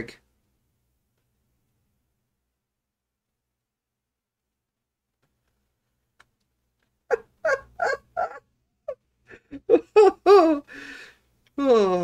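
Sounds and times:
man laughing: 9.3 - 10.7.

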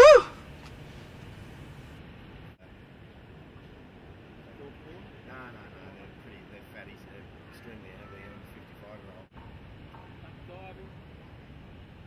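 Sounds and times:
background hiss: 0.0 - 7.8.

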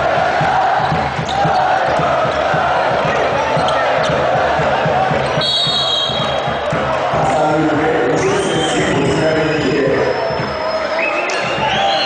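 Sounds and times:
crowd voices and shouting: 0.0 - 12.0
shrill whistle: 5.4 - 6.4, 8.4 - 9.0, 9.9 - 12.0.

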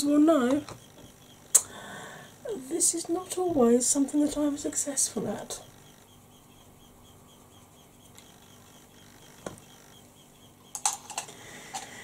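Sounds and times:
makeup brushes clicking: 10.7 - 12.0.

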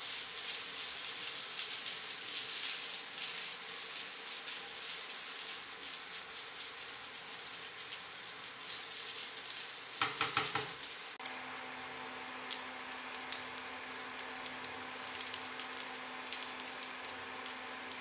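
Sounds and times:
spatula stirring in pan: 0.0 - 11.2, 12.2 - 18.0
rice sizzling in a frying pan: 0.0 - 18.0.

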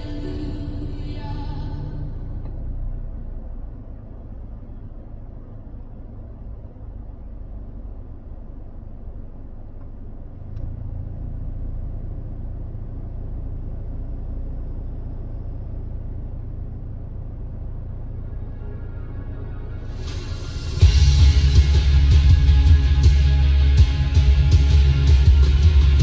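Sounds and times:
low steady rumble: 0.0 - 26.0.

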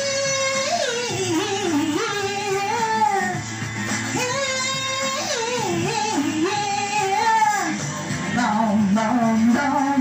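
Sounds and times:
woman singing into a microphone: 0.0 - 10.0.

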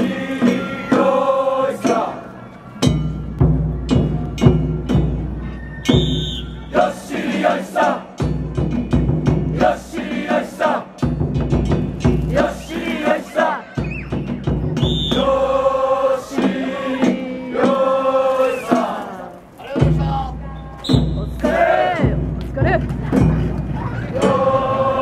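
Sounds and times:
men chanting in unison: 0.0 - 2.3, 6.7 - 8.2, 9.4 - 11.0, 12.2 - 13.8, 15.1 - 20.5, 21.2 - 22.3, 24.0 - 25.0
deep drum beats: 2.8 - 7.0, 8.1 - 19.0, 19.6 - 25.0.

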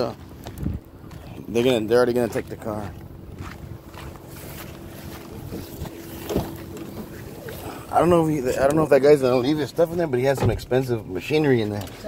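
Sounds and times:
faint steady hum: 0.0 - 12.0
wind on microphone: 0.5 - 0.9
car door thump: 6.2 - 7.1, 10.3 - 10.7.

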